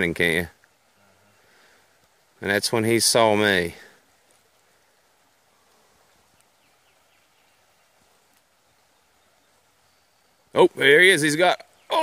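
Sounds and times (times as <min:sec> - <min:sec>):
tiny ticks: 0:06.3 - 0:06.6, 0:08.2 - 0:08.5.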